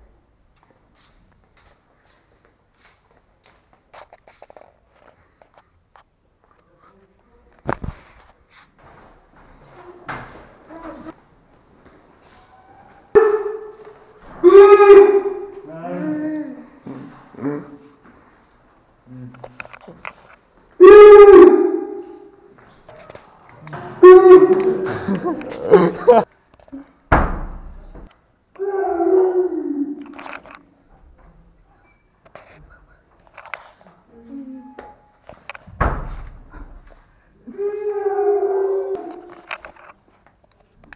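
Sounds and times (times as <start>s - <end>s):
sudden thunk: 27.1s - 28.0s.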